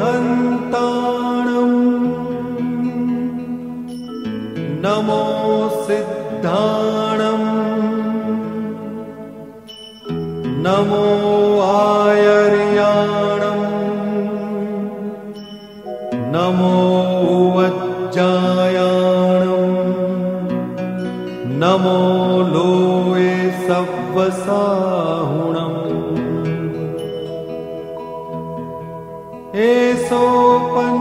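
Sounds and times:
person chanting mantra: 0:00.0 - 0:03.5, 0:10.5 - 0:20.6, 0:21.4 - 0:27.1, 0:29.5 - 0:31.0.

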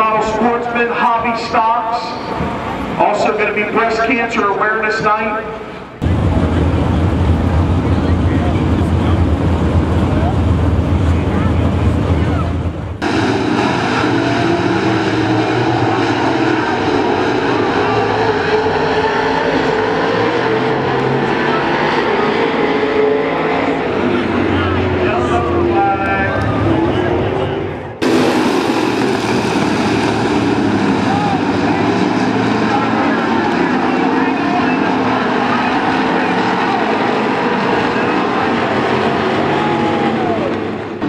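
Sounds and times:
race car engines passing: 0:00.0 - 0:41.0.

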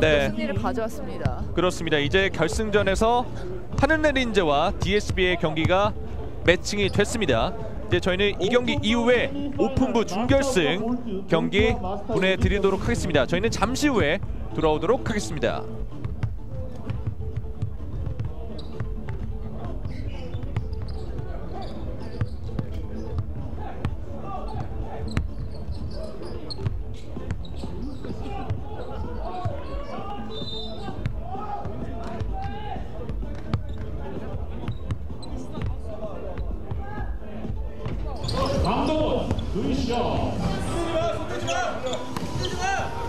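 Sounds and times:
players' voices: 0:00.0 - 0:43.0
basketballs bouncing on wooden floor: 0:16.0 - 0:24.0.

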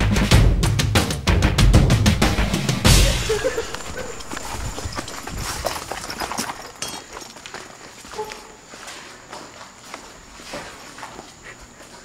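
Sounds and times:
footsteps through grass: 0:03.4 - 0:06.0.

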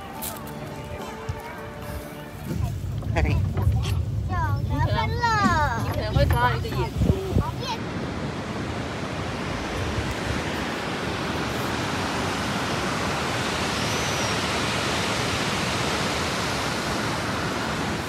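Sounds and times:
stream rushing over rocks: 0:06.8 - 0:18.0.

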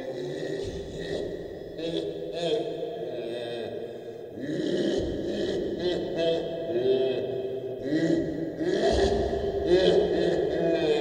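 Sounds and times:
low chant-like vocal: 0:00.0 - 0:11.0.

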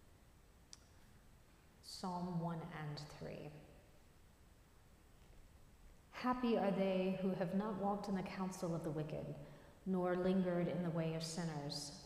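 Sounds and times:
woman speaking: 0:01.8 - 0:03.7, 0:06.2 - 0:12.0.

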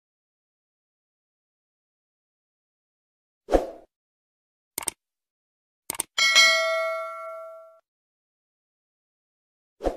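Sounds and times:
quick clicks: 0:04.8 - 0:05.0, 0:05.9 - 0:06.2
bell-like ding: 0:06.2 - 0:07.8.

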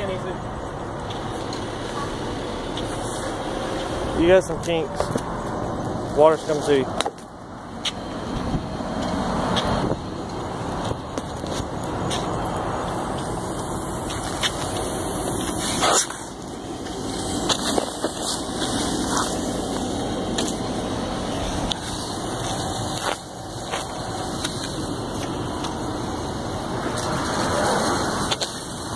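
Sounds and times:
fire engine pump running: 0:00.0 - 0:28.9.

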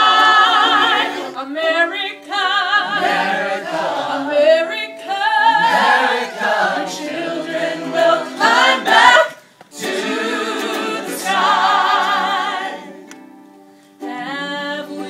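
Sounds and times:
gospel choir singing a cappella: 0:00.0 - 0:13.4, 0:14.0 - 0:15.0.

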